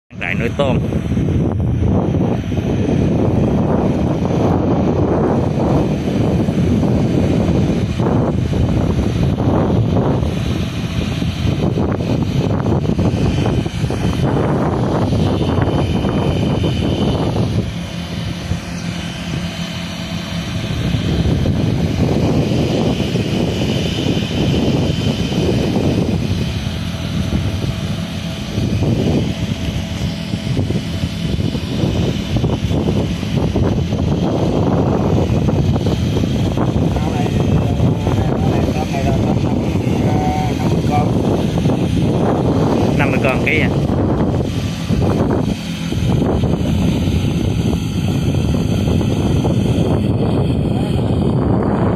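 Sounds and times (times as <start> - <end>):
mechanical drone of aerators: 0.0 - 51.9
water churning: 0.3 - 51.9.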